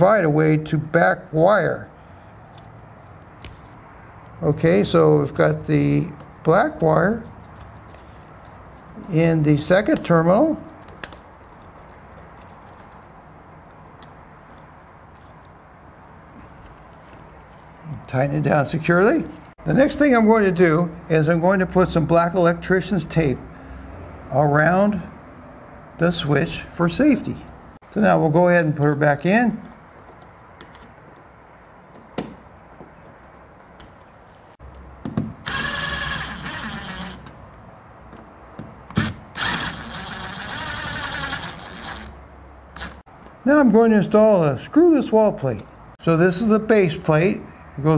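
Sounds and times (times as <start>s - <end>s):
screwdriver clicking and scraping metal: 6.2s - 13.2s, 14.0s - 15.6s, 35.4s - 37.4s, 38.9s - 42.2s, 42.8s - 43.0s
cordless drill driving screws: 35.4s - 37.3s, 38.9s - 42.2s, 42.8s - 43.0s.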